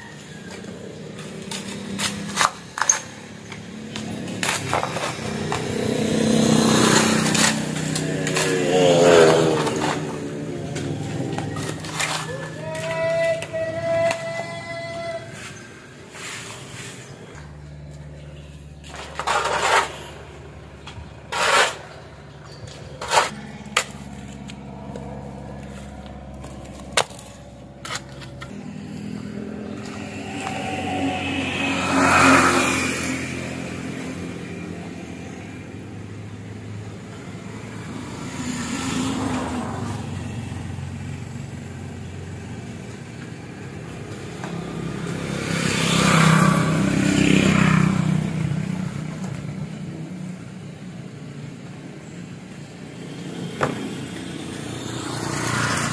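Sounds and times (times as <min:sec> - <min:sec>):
road vehicles passing: 0:00.0 - 0:55.9
shovel scraping on concrete: 0:00.4 - 0:14.4, 0:15.3 - 0:24.6, 0:25.6 - 0:31.1.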